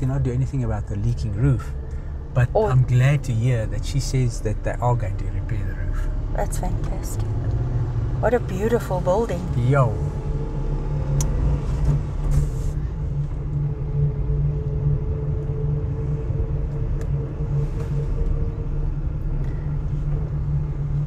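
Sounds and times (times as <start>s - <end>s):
car engine and tyre rumble: 0.0s - 21.0s
faint steady hum: 0.0s - 21.0s.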